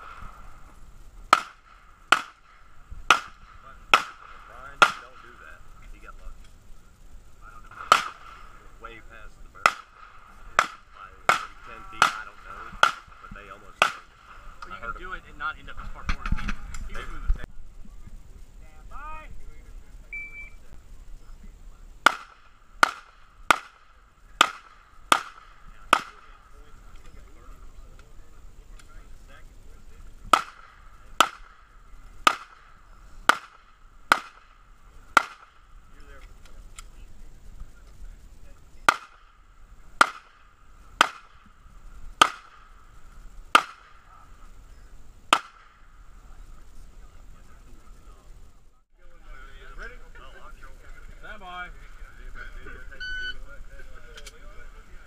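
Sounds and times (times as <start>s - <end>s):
handgun shots: 1.3s - 5.2s, 7.8s - 8.4s, 10.6s - 13.2s, 22.0s - 23.8s, 24.4s - 26.2s, 30.3s - 31.6s, 32.3s - 32.7s, 33.3s - 34.5s, 40.0s - 40.4s, 41.0s - 41.4s, 42.2s - 42.6s, 43.6s - 44.0s
electronic start beep: 20.1s - 20.6s, 53.0s - 53.4s.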